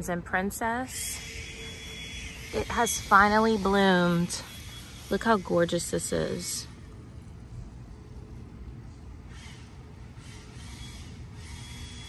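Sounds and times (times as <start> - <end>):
low mechanical rumble: 0.0 - 12.0.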